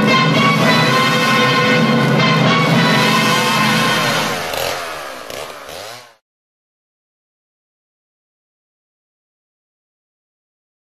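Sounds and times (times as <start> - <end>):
chainsaw winding down: 0.4 - 6.2.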